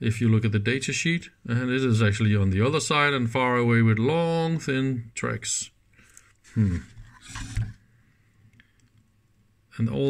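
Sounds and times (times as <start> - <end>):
man murmuring: 6.5 - 7.0.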